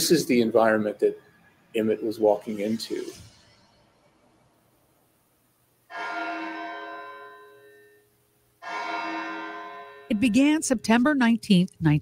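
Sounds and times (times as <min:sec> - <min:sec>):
large tower bell tolling: 0:05.9 - 0:07.7.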